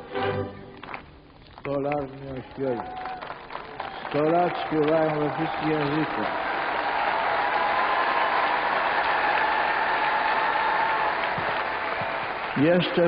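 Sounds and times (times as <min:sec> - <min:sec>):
crowd applauding and cheering: 0:00.0 - 0:13.0.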